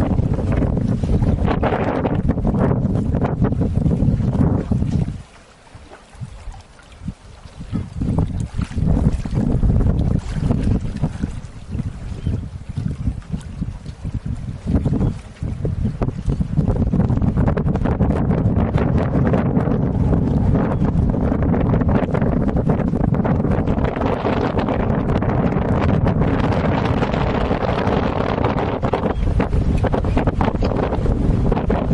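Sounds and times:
wind buffeting microphone: 0.0s - 31.9s.

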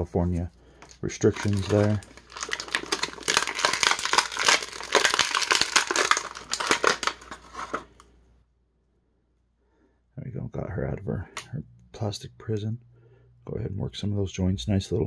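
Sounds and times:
plastic bag crinkling and tearing: 0.8s - 8.0s.

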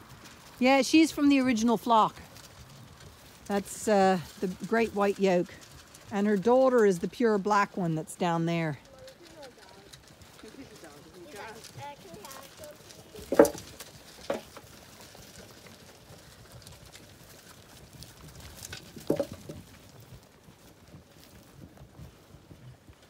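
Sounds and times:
sheep eating: 2.2s - 23.0s
faint voices: 8.4s - 13.6s.

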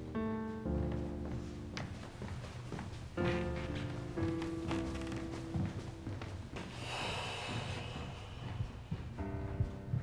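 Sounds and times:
person exhaling breathily: 6.7s - 8.9s.

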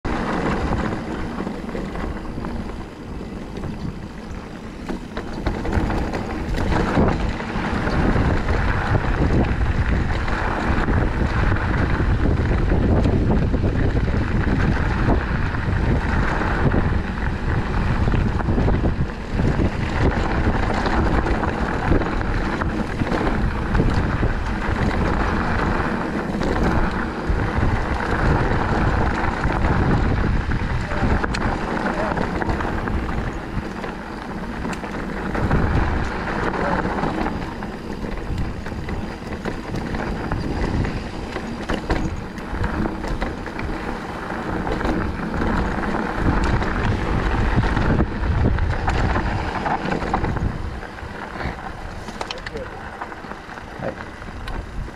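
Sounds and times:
mountain bike rattling on dirt trail: 0.0s - 54.9s
wind buffeting microphone: 0.0s - 54.9s.

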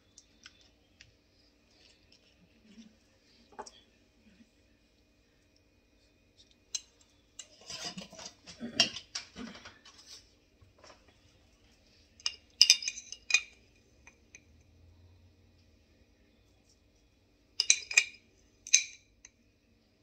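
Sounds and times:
metal spoon clinking on glass: 12.2s - 14.5s, 17.6s - 19.1s.

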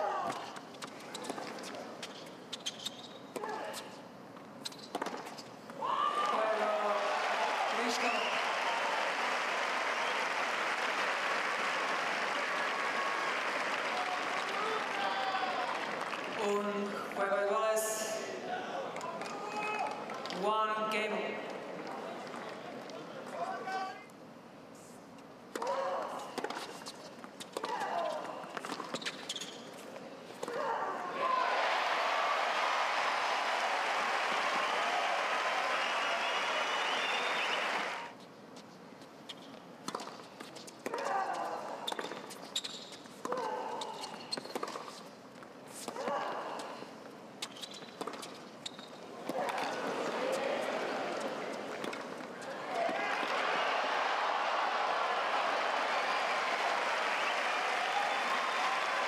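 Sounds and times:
crowd applause: 6.3s - 16.4s, 31.5s - 38.1s, 52.4s - 59.0s
rackets hitting tennis ball: 25.5s - 29.6s, 39.8s - 45.0s, 47.4s - 53.4s
tennis ball bouncing: 44.4s - 45.0s.

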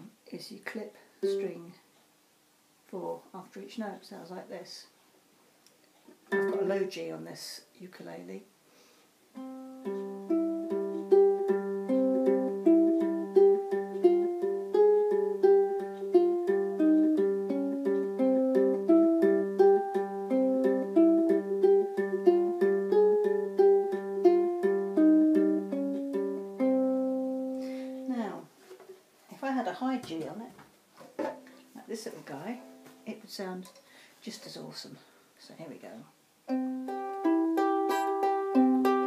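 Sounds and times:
fingerstyle ukulele melody: 1.2s - 1.6s, 6.3s - 6.8s, 9.4s - 28.0s, 36.5s - 39.0s.

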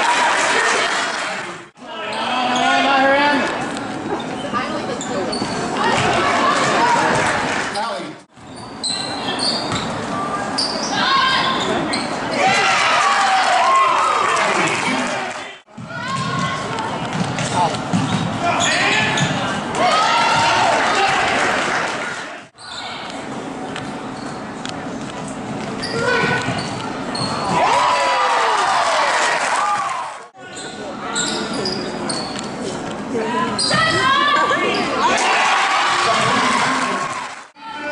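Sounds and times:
sneaker squeaks: 2.1s - 3.0s, 4.1s - 6.2s, 7.7s - 12.6s, 15.9s - 19.6s, 22.6s - 24.6s, 25.2s - 27.6s, 30.4s - 32.8s, 33.4s - 35.0s
players and spectators calling out: 8.8s - 23.2s, 33.1s - 37.9s
basketball bouncing on court: 15.7s - 19.4s.

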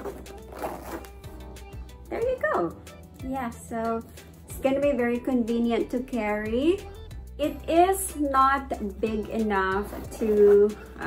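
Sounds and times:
zipper being pulled shut: 0.0s - 1.3s
background music: 0.0s - 11.0s.

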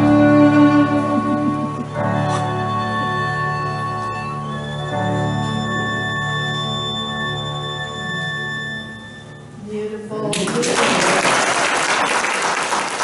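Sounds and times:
solo violin: 0.0s - 9.5s
recorded piano accompaniment: 0.0s - 10.1s.

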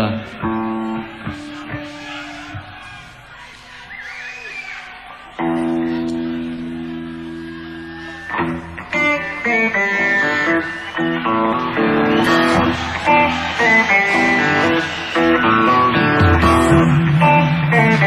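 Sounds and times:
electric guitar through amplifier: 5.4s - 18.0s
bass guitar: 11.2s - 18.0s.

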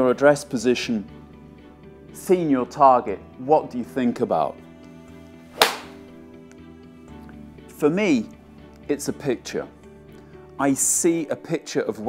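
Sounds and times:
golf club striking ball: 5.6s - 6.0s.

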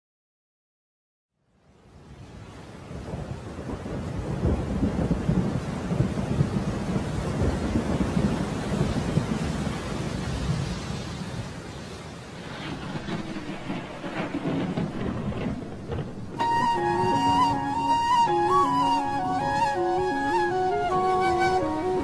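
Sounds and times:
steady rain: 1.4s - 22.0s
rolling thunder: 2.7s - 22.0s.

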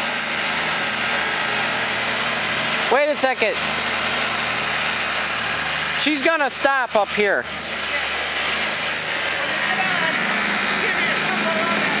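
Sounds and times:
snowmobile engine running: 0.0s - 12.0s.

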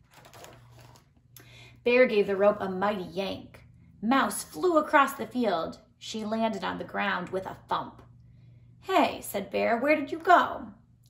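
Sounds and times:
paper page turning: 0.0s - 1.2s.

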